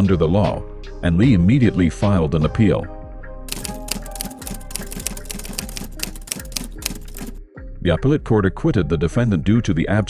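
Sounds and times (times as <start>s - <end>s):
soft background music: 0.0s - 10.0s
typewriter keys clacking: 3.5s - 7.4s.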